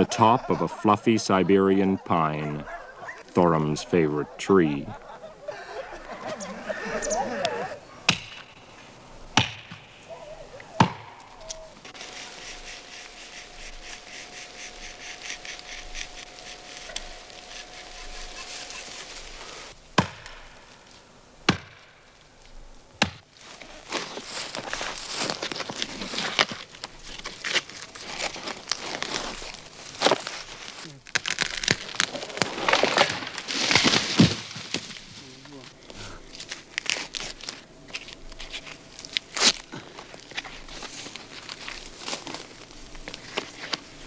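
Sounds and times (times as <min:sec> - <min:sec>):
bark peeling crackle: 0:02.2 - 0:07.6, 0:10.1 - 0:19.7, 0:23.3 - 0:44.0
axe chopping into tree trunk: 0:08.1 - 0:08.5, 0:09.4 - 0:09.9, 0:20.0 - 0:20.4, 0:21.5 - 0:21.8, 0:23.0 - 0:23.2.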